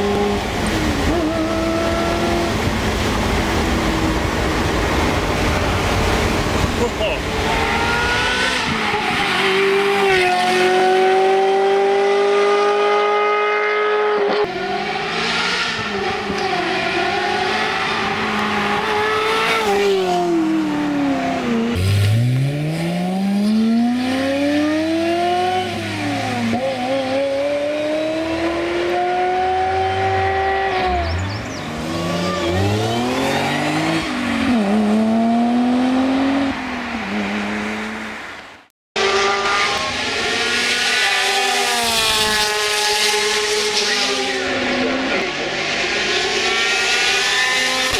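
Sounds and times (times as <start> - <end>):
sports car accelerating past: 0.0 - 38.4, 39.0 - 47.9.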